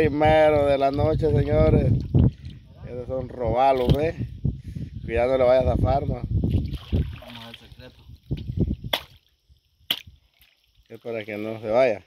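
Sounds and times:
water dripping and splashing: 6.5 - 11.7.

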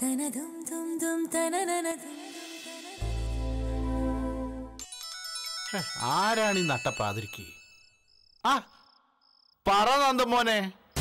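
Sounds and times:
mobile phone ringtone: 4.8 - 8.2.

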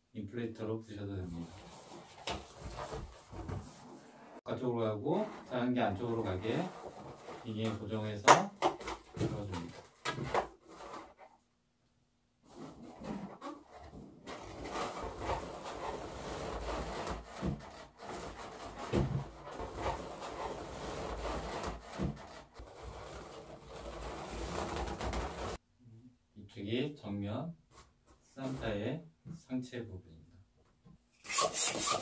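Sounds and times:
balloons rubbing and squeaking: 1.2 - 4.4, 5.0 - 8.1, 12.4 - 25.6, 31.2 - 32.0.

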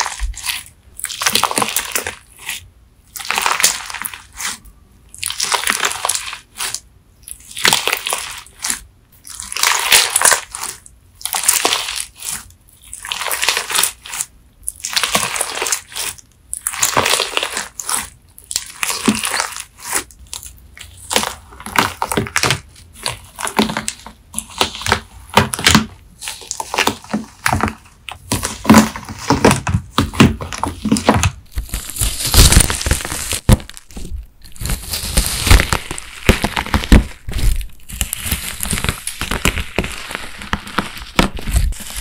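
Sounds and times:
crunchy slime squeezed by hand: 0.0 - 42.0.

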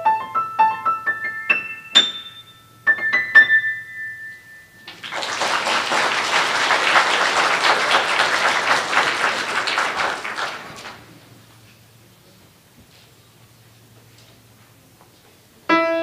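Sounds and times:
audience applauding: 4.9 - 11.3.

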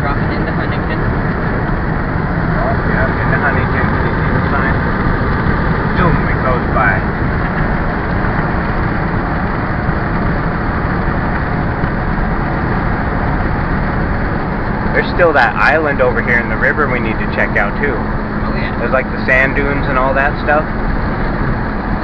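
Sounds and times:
car road and engine noise: 0.0 - 22.0.

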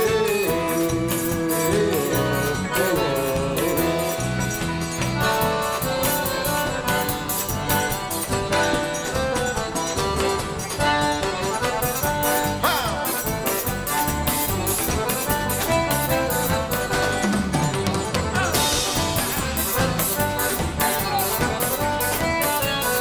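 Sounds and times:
accordion melody: 0.0 - 23.0
drum kit beat: 0.0 - 23.0.

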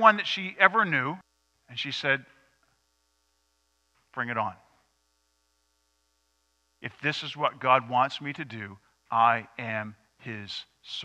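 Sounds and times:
man speaking: 0.0 - 2.3, 4.2 - 4.7, 6.8 - 11.0
faint electrical hum: 0.0 - 11.0.

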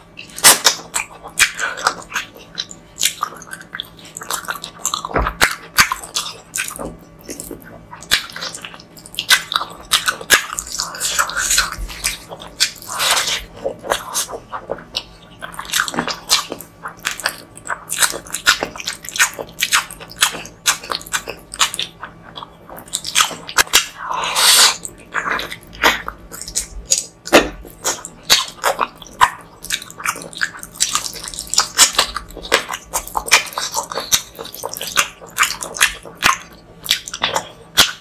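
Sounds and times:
wet chewing and smacking: 0.0 - 38.0.

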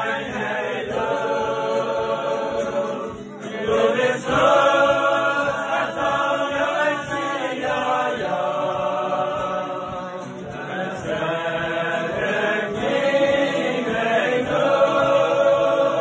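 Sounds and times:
men singing in chorus: 0.0 - 16.0.

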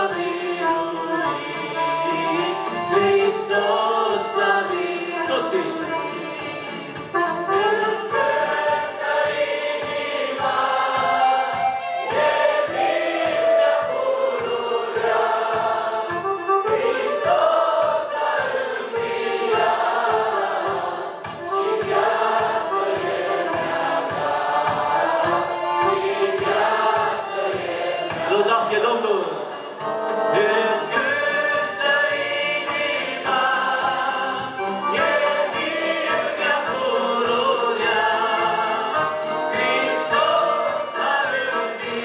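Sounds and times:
choir singing a hymn: 0.0 - 42.0
keyboard accompaniment: 0.0 - 42.0.

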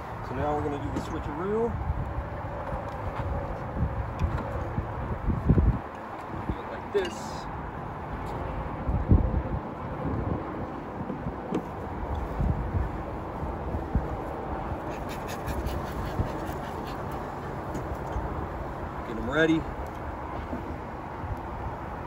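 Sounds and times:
wind rumbling on microphone: 0.0 - 22.0.

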